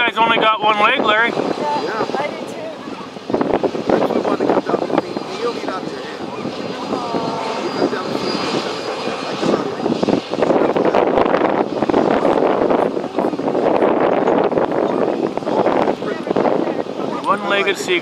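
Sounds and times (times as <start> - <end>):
steady engine noise: 0.0 - 18.0.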